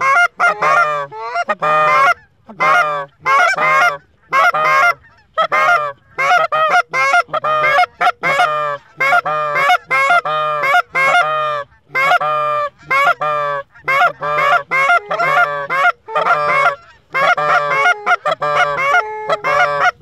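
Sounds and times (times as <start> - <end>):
goose honking and clucking: 0.0 - 20.0.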